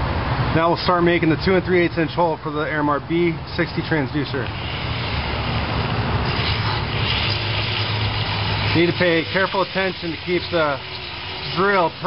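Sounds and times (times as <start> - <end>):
drill with hole saw cutting: 4.6 - 12.0.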